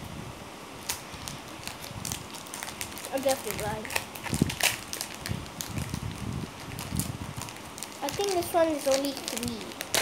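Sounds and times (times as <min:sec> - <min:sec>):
foil wrapper crinkling: 0:00.8 - 0:10.0
sharp wrapper snap: 0:00.8 - 0:10.0.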